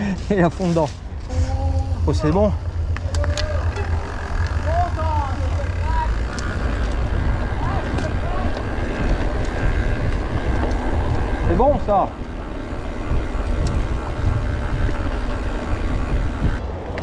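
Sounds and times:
bike clicks and rattles: 0:00.0 - 0:17.0
mountain bike rolling on dirt: 0:00.0 - 0:17.0
wind on microphone: 0:01.0 - 0:17.0.

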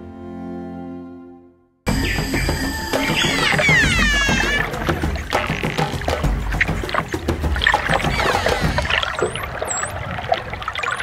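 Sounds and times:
water bubbling and sloshing: 0:02.0 - 0:11.0.

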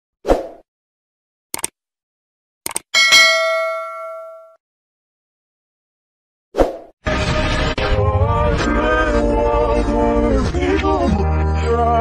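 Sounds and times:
quick double clicks: 0:01.6 - 0:01.8, 0:02.7 - 0:02.9
bright bell ding: 0:03.0 - 0:04.6.

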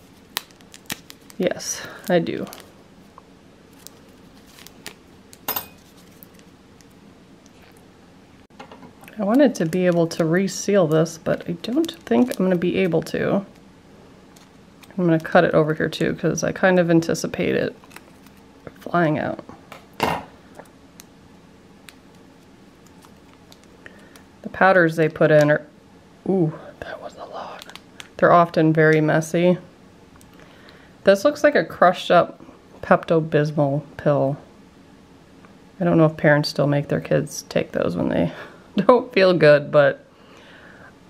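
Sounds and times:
powder sachet crinkling: 0:00.1 - 0:02.8, 0:03.7 - 0:07.0, 0:09.1 - 0:13.6, 0:17.7 - 0:18.5, 0:21.9 - 0:24.2.

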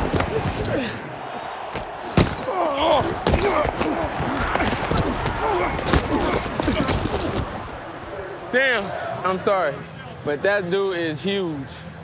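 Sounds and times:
stadium crowd noise: 0:00.0 - 0:12.0
football pads colliding thud: 0:01.7 - 0:07.7.

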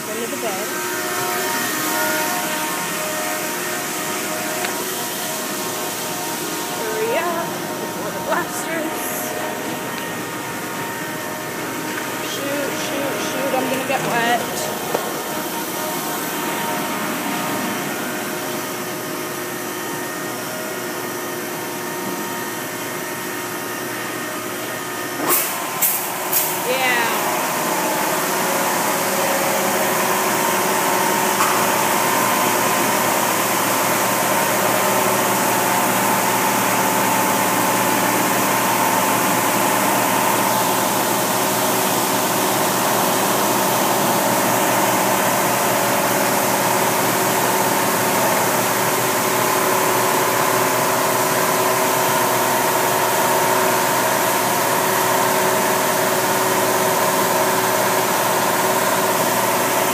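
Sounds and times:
car wash machinery humming: 0:00.0 - 0:59.9.

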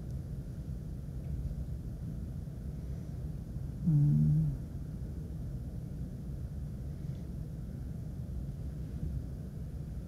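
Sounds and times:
low rumble of room noise: 0:00.0 - 0:10.0
man humming: 0:03.8 - 0:04.6.

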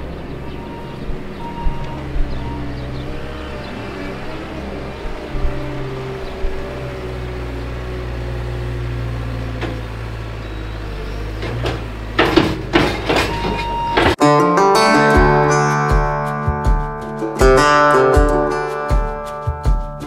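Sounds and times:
diesel engine under load: 0:00.0 - 0:14.2
short knocks: 0:11.3 - 0:14.2.

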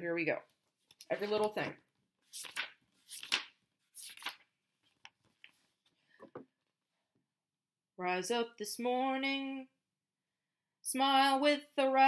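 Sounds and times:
book pages flipping: 0:00.7 - 0:06.0.

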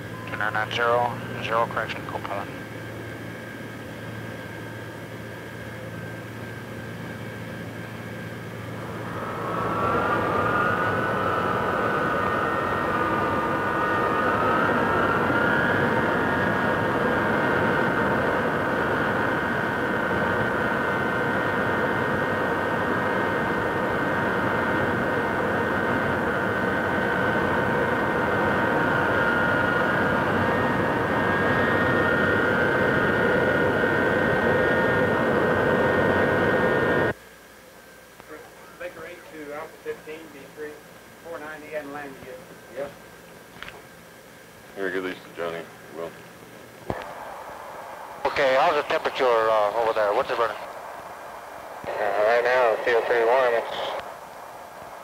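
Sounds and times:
jet engines whining: 0:00.0 - 0:37.2, 0:38.5 - 0:55.0
rushing roar: 0:08.7 - 0:20.6.

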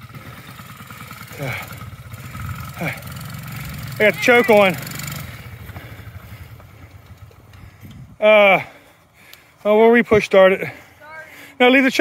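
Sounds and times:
small engine running on choke: 0:00.0 - 0:08.0.

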